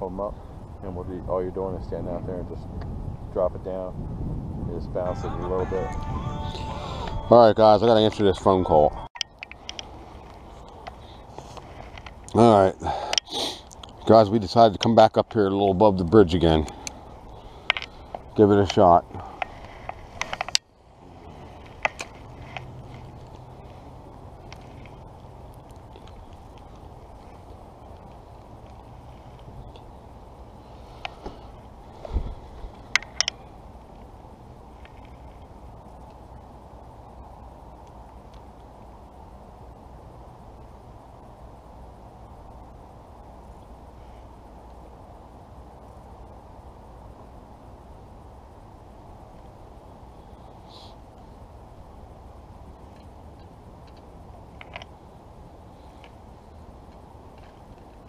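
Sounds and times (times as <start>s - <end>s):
low outdoor background: 0.0s - 58.0s.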